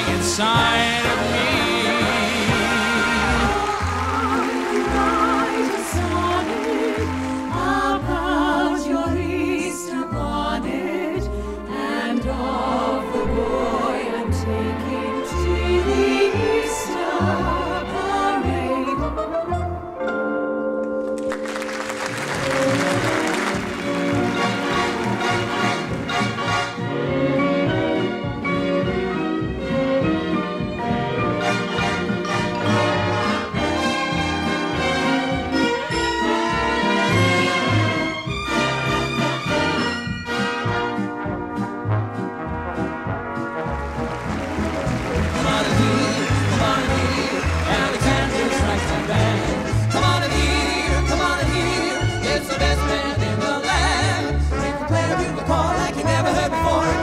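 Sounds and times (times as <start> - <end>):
swing band music: 0.0 - 8.8, 19.5 - 57.0
orchestra playing: 0.0 - 57.0
audience applause: 1.8 - 8.2, 21.0 - 26.8, 43.6 - 52.4
held brass chords: 21.2 - 27.6, 31.2 - 57.0.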